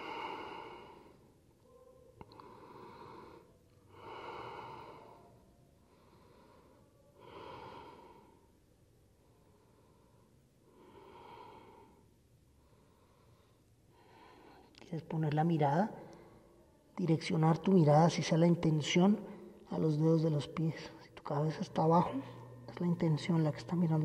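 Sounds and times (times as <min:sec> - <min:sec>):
man breathing deeply: 0:00.0 - 0:01.3.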